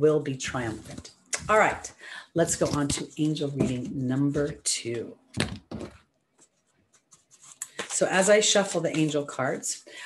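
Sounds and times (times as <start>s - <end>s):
cards being shuffled: 5.8s - 8.0s.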